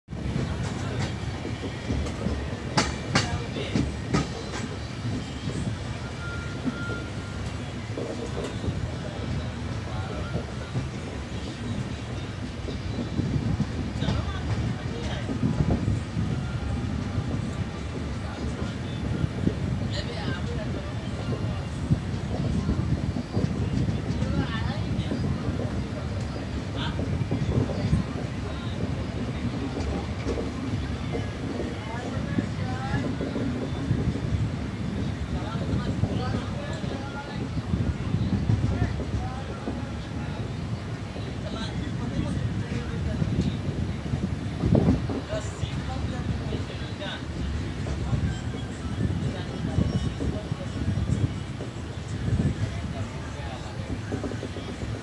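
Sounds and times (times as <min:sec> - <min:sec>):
train wheels rumbling on rail: 0:00.1 - 0:55.0
wheels clacking over rail joints: 0:00.2 - 0:16.3
faint thin wheel squeal: 0:05.3 - 0:07.7.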